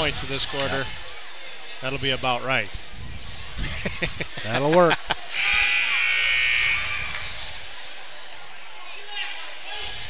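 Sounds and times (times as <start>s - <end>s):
crowd murmur: 0.0s - 10.0s
scoreboard horn: 5.4s - 6.9s.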